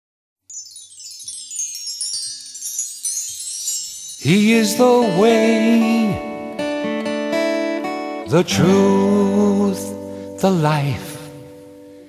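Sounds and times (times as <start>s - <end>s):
high ringing chimes: 0.4s - 10.6s.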